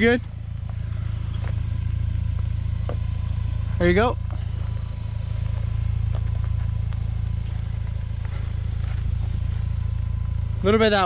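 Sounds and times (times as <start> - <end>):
truck engine running at low revs: 0.0 - 11.0
rocks knocking under tyres: 0.6 - 3.1, 4.3 - 9.9.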